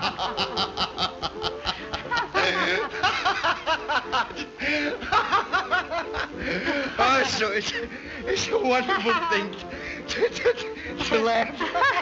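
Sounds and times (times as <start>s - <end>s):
hearty laughter: 0.0s - 12.0s.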